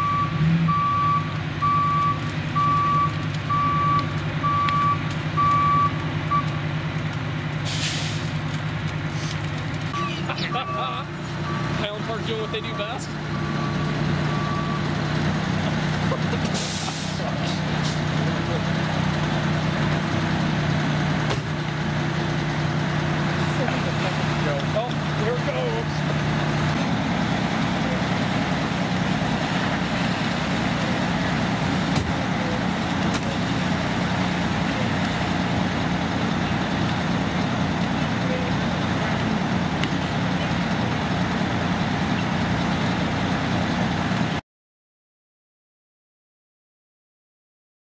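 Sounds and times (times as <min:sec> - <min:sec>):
diesel engines droning: 0:00.0 - 0:44.4
short hisses: 0:07.7 - 0:08.4, 0:16.5 - 0:18.0.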